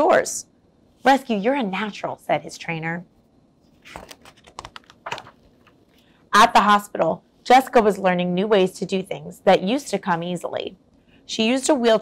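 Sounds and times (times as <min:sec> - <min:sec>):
book page turning: 0:03.7 - 0:05.8.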